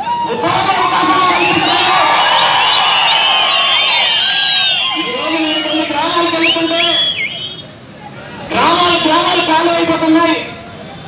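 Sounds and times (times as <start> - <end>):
crowd cheering and whooping: 0.0 - 7.6.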